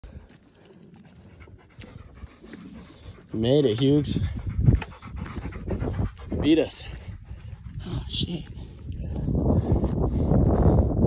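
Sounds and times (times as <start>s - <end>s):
dog panting faintly: 0.2s - 9.3s.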